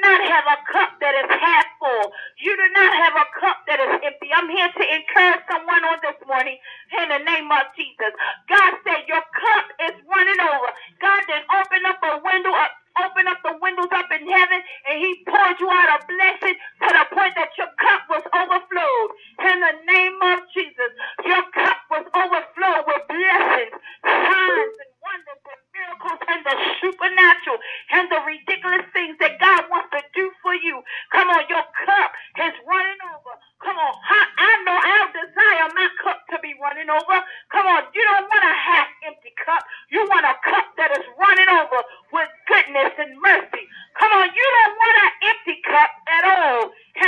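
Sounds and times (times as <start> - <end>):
preacher talking: 0.0 - 47.0.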